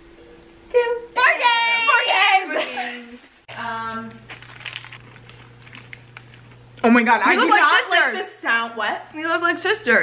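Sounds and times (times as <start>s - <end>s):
wrapper crinkling: 3.0s - 6.8s.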